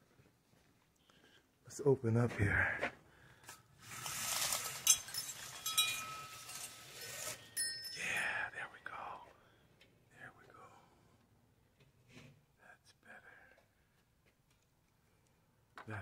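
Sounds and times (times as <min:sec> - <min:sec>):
breathy voice sound: 0:01.0 - 0:03.5, 0:07.9 - 0:11.2
window blind slats clattering: 0:03.8 - 0:07.6.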